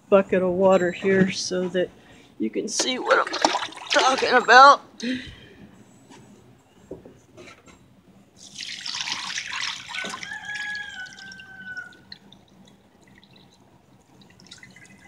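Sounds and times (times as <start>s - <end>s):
water splashing onto cloth: 2.8s - 4.4s, 8.4s - 11.3s
soft water trickle: 2.8s - 4.8s, 8.4s - 15.0s.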